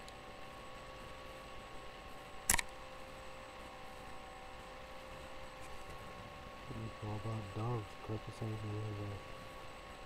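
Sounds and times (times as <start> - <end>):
faint electrical tone: 0.0 - 10.0
man speaking: 6.7 - 9.2.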